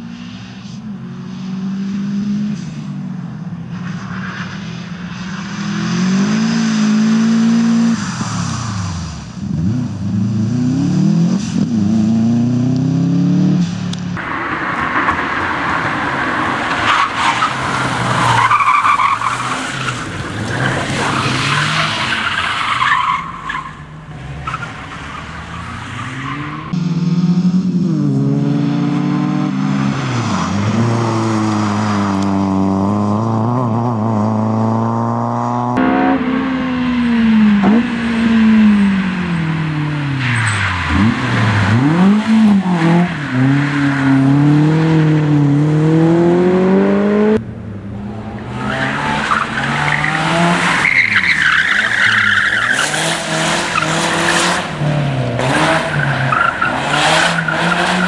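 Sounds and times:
rally car engines revving: 0.0 - 58.0
tyre squeal: 40.2 - 44.2.

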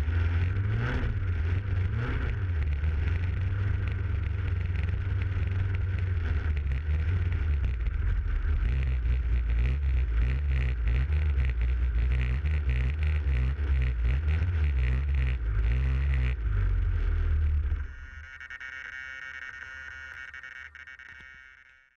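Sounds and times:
quiet sustained tone: 2.5 - 22.0.

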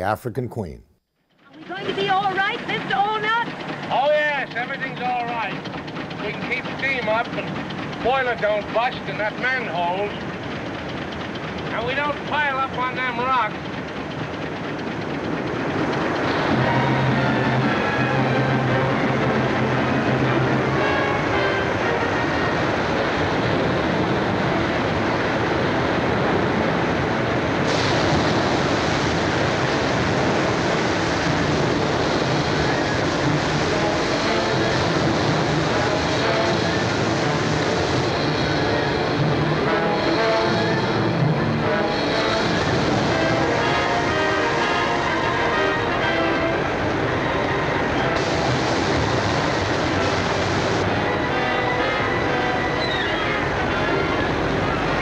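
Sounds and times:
film score music: 1.4 - 55.0.

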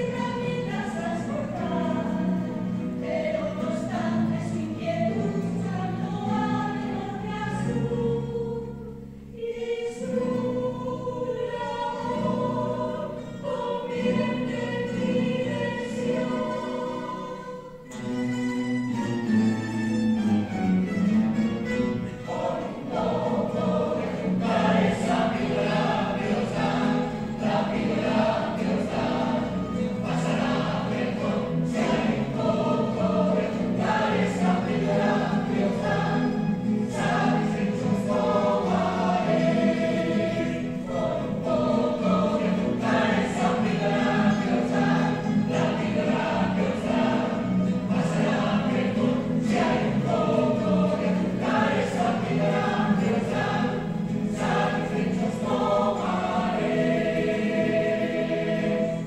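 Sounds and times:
choir singing: 0.0 - 18.2, 21.2 - 59.0
plucked-string ensemble strumming: 0.0 - 59.0.

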